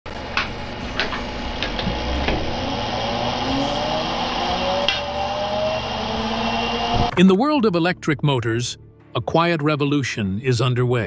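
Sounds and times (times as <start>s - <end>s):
rotor spinning with whirring hiss: 0.1s - 7.1s.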